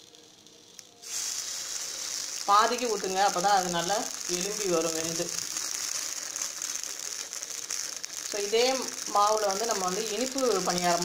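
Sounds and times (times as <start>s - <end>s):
oil sizzling and crackling in a pan: 0.0s - 11.0s.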